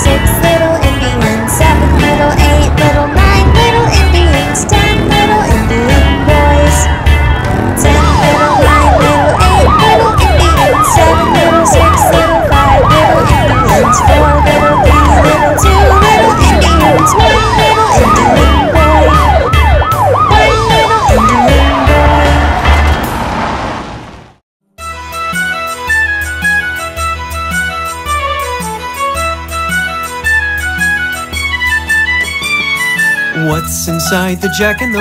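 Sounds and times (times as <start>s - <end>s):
police siren yelping: 0.1s - 23.0s.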